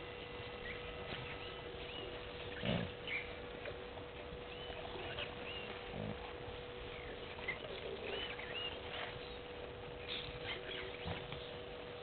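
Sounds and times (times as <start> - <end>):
low animal call: 0.2 - 11.7
bird chirps: 0.6 - 3.4, 4.4 - 6.1, 6.8 - 11.6.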